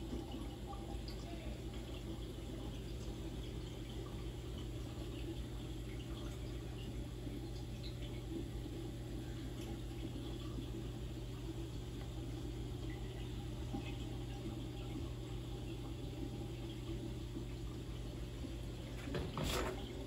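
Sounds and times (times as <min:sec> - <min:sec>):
low pump hum: 0:00.0 - 0:20.0
trickle of circulating water: 0:00.0 - 0:20.0.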